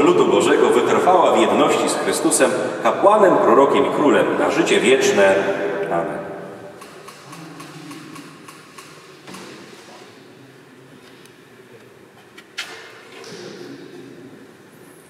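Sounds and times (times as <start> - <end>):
faint low murmurs: 0.0 - 15.0.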